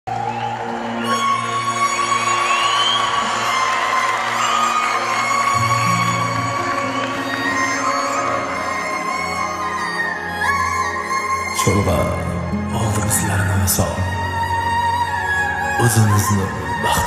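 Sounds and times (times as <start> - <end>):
audience cheering and applauding: 0.0 - 11.5.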